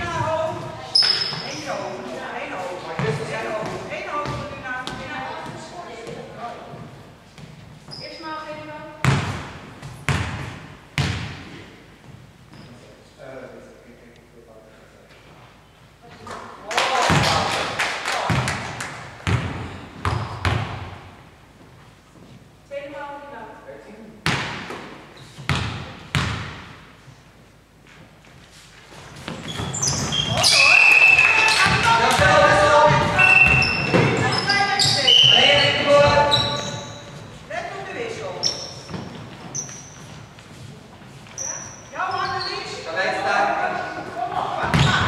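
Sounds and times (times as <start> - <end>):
basketball bouncing on wooden floor: 0.0 - 1.5, 3.0 - 12.2, 19.2 - 21.0, 24.2 - 26.8, 31.5 - 37.3, 38.4 - 40.2, 44.6 - 45.0
sneakers squeaking: 0.0 - 13.0, 19.2 - 21.0, 24.2 - 26.8, 28.5 - 45.0
players calling out: 29.5 - 37.2.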